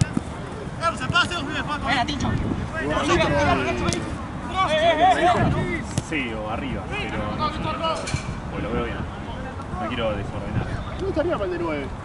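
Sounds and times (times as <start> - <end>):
players calling out: 0.0 - 6.0.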